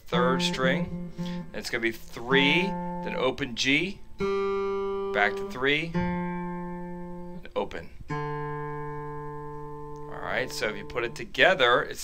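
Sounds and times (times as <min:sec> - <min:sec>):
electric guitar note ringing: 0:00.0 - 0:11.3.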